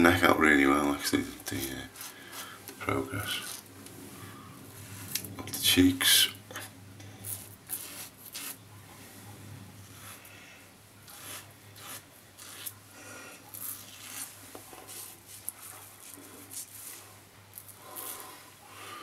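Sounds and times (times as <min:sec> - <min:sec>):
razor scraping stubble: 0:01.4 - 0:03.7, 0:06.5 - 0:08.6, 0:09.8 - 0:10.3, 0:11.0 - 0:18.5.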